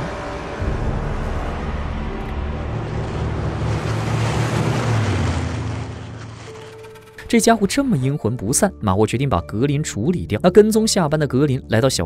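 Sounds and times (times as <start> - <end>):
car engine rumble: 0.0 - 7.9
road noise: 0.0 - 7.9.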